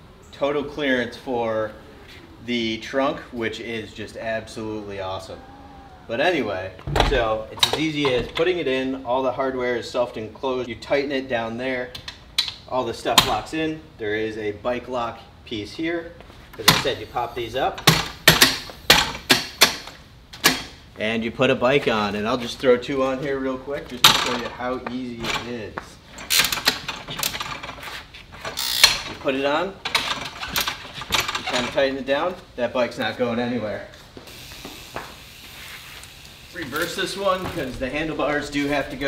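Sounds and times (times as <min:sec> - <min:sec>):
low background hiss: 0:00.0 - 0:39.0
bike rack arms clacking: 0:17.8 - 0:20.8.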